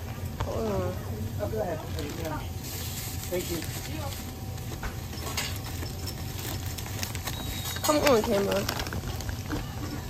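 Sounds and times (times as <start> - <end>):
small clicks and rustles: 4.6 - 10.0.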